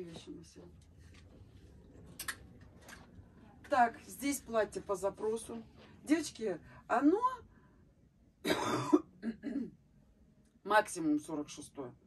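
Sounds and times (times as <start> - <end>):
woman coughing: 8.4 - 9.8
throat clearing: 8.5 - 9.8.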